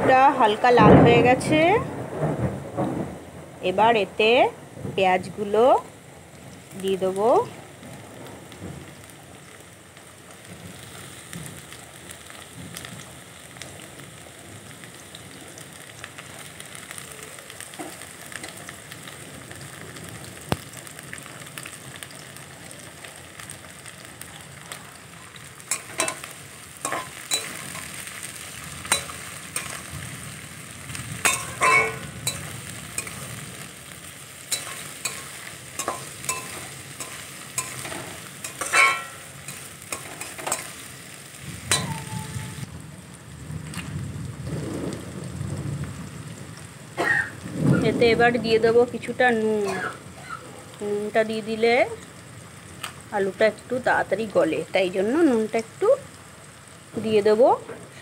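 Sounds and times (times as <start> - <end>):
potatoes sizzling in oil: 0.0 - 1.9, 3.6 - 58.0
metal spatula scraping pan: 25.7 - 26.3, 26.9 - 28.0, 31.2 - 33.3, 34.5 - 40.8, 41.7 - 42.6.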